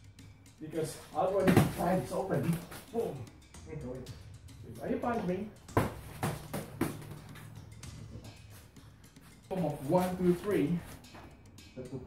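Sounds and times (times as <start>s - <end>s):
hands striking padded guards: 1.4s - 2.8s, 5.7s - 7.2s.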